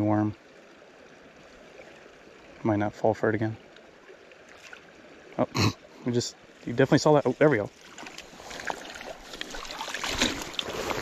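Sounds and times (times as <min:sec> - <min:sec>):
fish splashing at water surface: 0:07.9 - 0:11.0.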